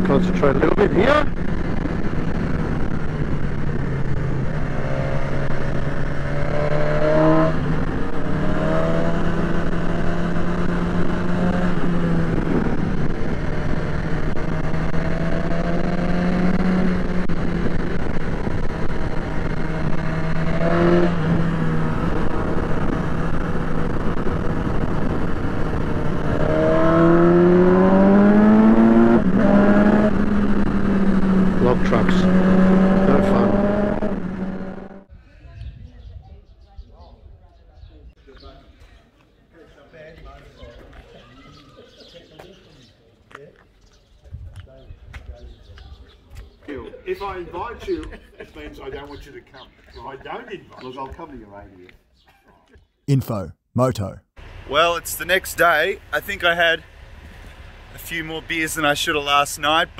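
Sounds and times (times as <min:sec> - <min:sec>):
motorcycle engine revving: 0:00.0 - 0:35.1
wind and road noise: 0:00.0 - 0:39.2, 0:42.4 - 0:52.2, 0:54.4 - 0:59.9.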